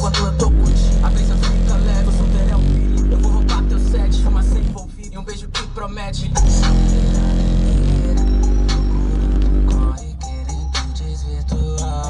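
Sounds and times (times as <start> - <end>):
rap music with heavy bass: 0.0 - 12.0.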